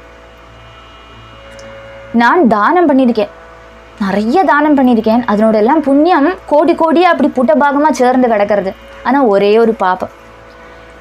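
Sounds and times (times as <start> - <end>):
faint steady high tones: 0.0 - 11.0
steady low hum: 0.0 - 11.0.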